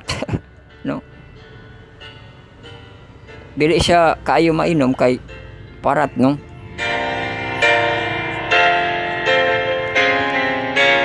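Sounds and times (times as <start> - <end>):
keyboard music held chords: 0.0 - 11.0.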